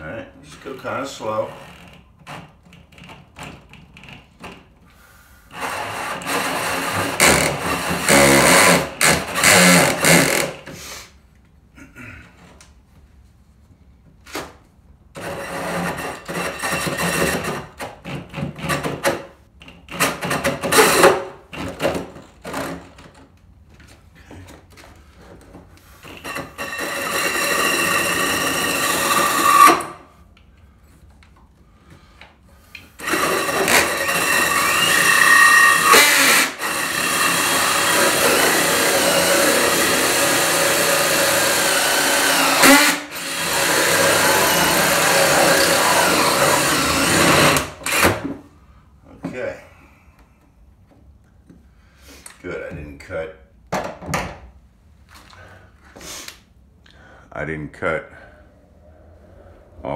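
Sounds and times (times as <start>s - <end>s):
power drill with hole saw cutting wood: 5.5s - 10.6s, 15.2s - 17.6s, 20.2s - 21.1s, 26.2s - 30.0s, 33.0s - 48.2s.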